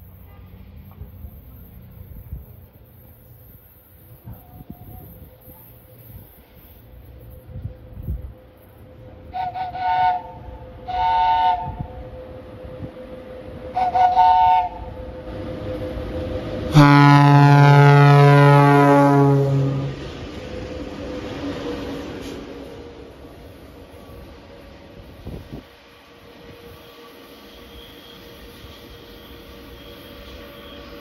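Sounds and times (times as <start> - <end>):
locomotive running rumble: 0.0 - 31.0
long deep train horn blast: 9.2 - 21.4
short two-note train horn toots: 9.3 - 12.0, 13.7 - 14.9, 16.7 - 20.0.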